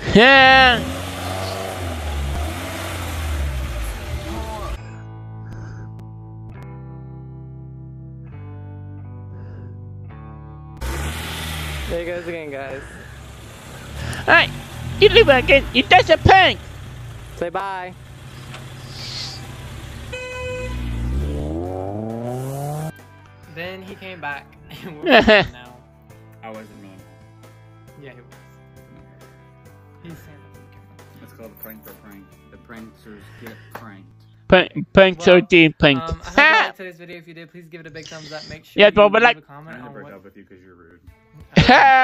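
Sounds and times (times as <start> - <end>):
car engine rumbling: 0.0 - 5.0, 10.8 - 22.9
guitar music: 0.5 - 12.7, 14.0 - 17.8
car horn toot: 19.9 - 21.2.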